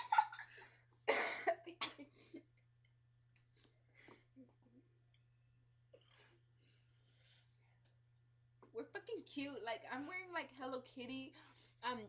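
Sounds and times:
person coughing: 0:00.0 - 0:02.3.

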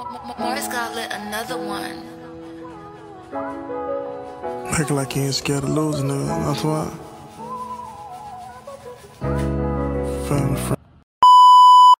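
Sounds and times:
electronic test-tone beep: 0:11.2 - 0:12.0.

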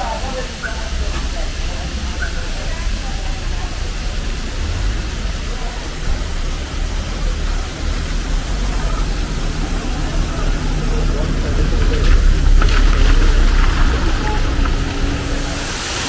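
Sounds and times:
faint voices: 0:00.0 - 0:16.0
waterfall rushing: 0:00.0 - 0:16.0
low rumble: 0:02.7 - 0:16.0.

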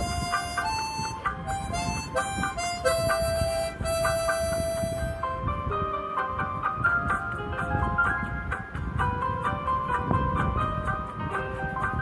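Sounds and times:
karaoke backing track with beat: 0:00.0 - 0:12.0.

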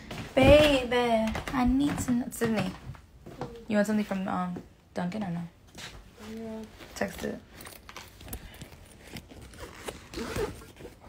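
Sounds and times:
phone handling rustling and scraping: 0:07.5 - 0:11.0.

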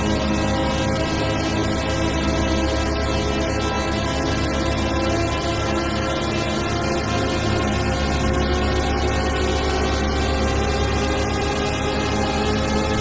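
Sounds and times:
synthesizer drone: 0:00.0 - 0:13.0.

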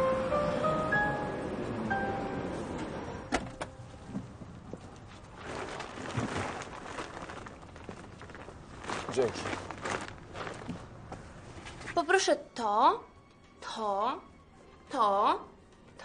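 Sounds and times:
plastic bag rustling: 0:04.7 - 0:12.0.

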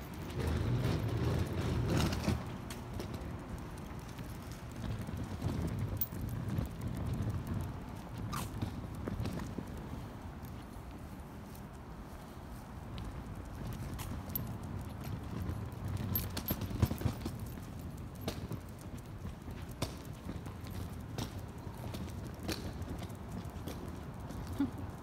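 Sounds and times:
footsteps on concrete sidewalk: 0:00.0 - 0:25.0
low rumble of street noise: 0:00.0 - 0:25.0.

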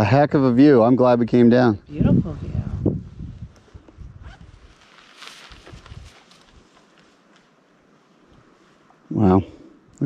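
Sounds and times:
wind buffeting microphone: 0:01.8 - 0:04.7, 0:05.5 - 0:06.6
soft scuffs and rustles: 0:02.2 - 0:08.9.

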